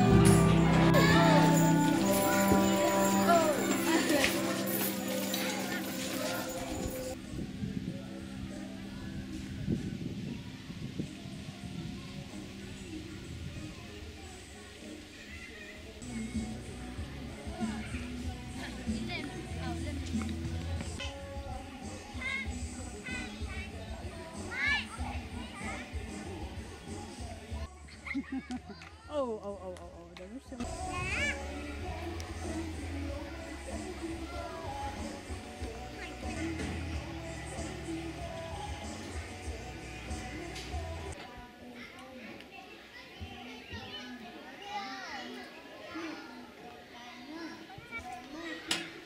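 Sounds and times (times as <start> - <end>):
young children's voices at play: 9.8 - 16.6, 21.8 - 29.2, 30.6 - 38.4, 41.2 - 49.0.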